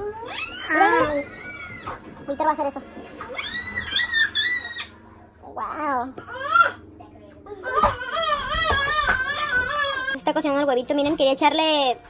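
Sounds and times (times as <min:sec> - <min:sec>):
child squealing high-pitched: 0:00.0 - 0:01.9.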